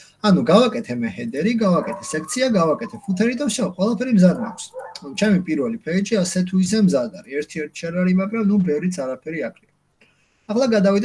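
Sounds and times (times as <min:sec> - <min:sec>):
person speaking: 0:00.5 - 0:09.0.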